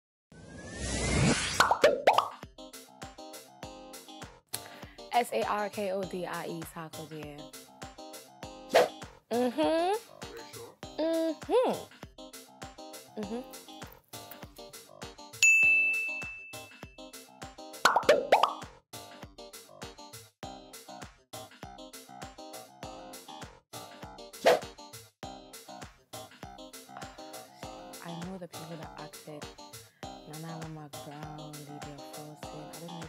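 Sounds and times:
whoosh with rising sweep: 0:00.3 - 0:02.1
rising cartoon pops: 0:01.3 - 0:02.4, 0:17.9 - 0:18.6
background music with steady beat: 0:02.2 - 0:33.0
high bell-like ding: 0:15.4 - 0:16.8.

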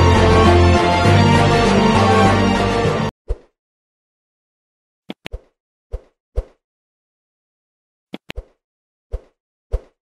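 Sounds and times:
mouse clicks: 0:05.1 - 0:05.4, 0:08.1 - 0:08.6.

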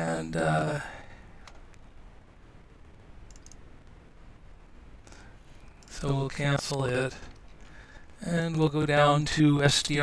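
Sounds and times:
low room noise: 0:00.0 - 0:10.0
computer mouse clicks: 0:03.3 - 0:03.6
faint high ticks: 0:03.3 - 0:03.6.

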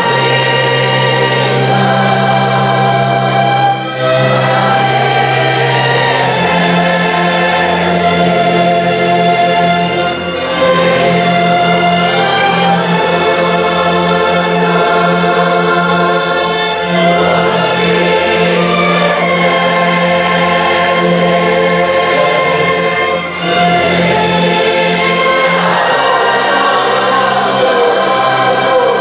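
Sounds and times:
choir singing a hymn: 0:00.0 - 0:29.0
orchestral accompaniment: 0:00.0 - 0:29.0.

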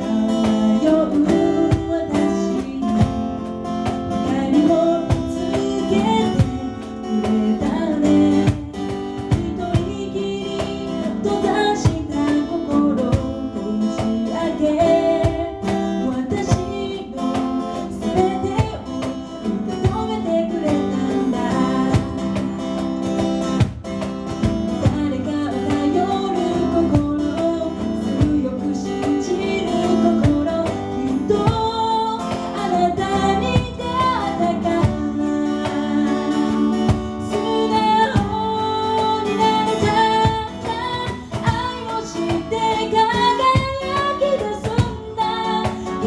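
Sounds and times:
woman singing: 0:00.0 - 0:23.2, 0:24.5 - 0:46.0
cajon beat: 0:00.0 - 0:46.0
strummed acoustic guitar: 0:00.0 - 0:46.0.

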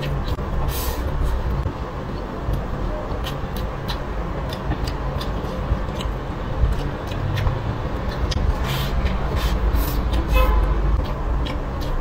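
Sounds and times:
chewing food close up: 0:02.1 - 0:12.0.

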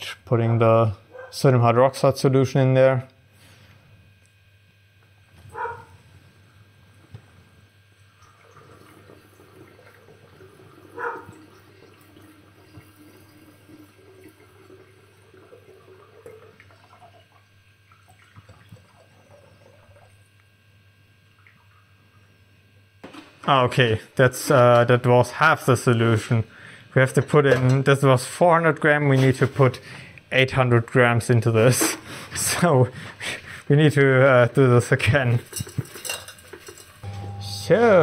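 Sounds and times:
liquid trickling: 0:08.0 - 0:20.4, 0:21.3 - 0:22.3.

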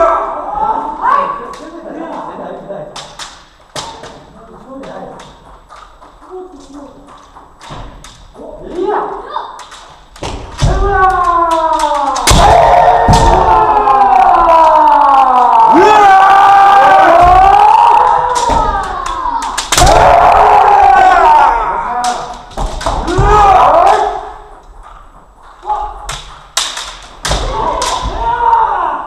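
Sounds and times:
drawn-out shouts of several voices: 0:10.9 - 0:22.2
bamboo sword strikes cracking: 0:18.1 - 0:20.1, 0:26.1 - 0:28.2.

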